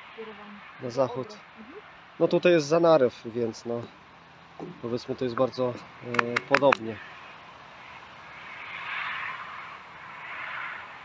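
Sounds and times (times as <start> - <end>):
soft rushing swells: 0.0 - 11.0.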